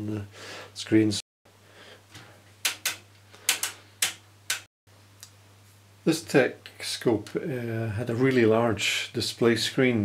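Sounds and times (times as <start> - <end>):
switch clicks: 2.6 - 5.4.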